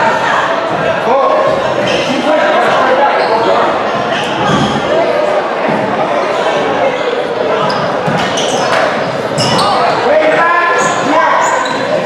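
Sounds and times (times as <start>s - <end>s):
indistinct voices echoing: 0.0s - 12.0s.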